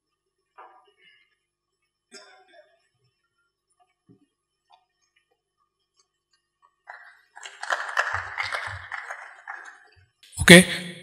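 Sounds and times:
audience applause: 6.9 - 9.9.

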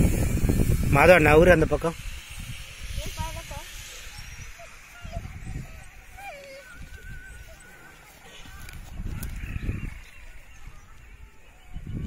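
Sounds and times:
wind rumble on microphone: 0.0 - 7.8, 8.4 - 12.0
dog whining: 4.6 - 8.0.

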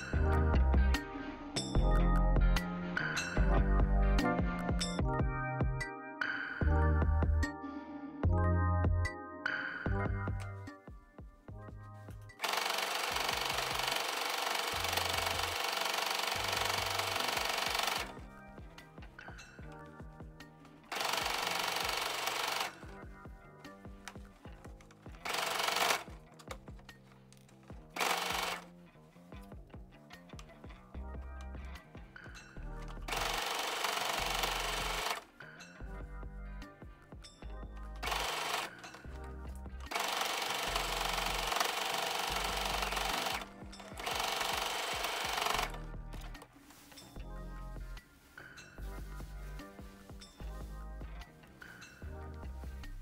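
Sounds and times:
sewing machine needle clatter: 12.4 - 18.2, 20.9 - 23.0, 24.0 - 28.7, 32.9 - 35.2, 38.0 - 39.2, 39.9 - 46.4.

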